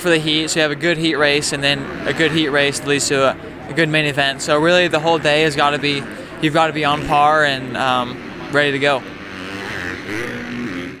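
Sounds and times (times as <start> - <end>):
dirt bike engine revving: 0.0 - 11.0.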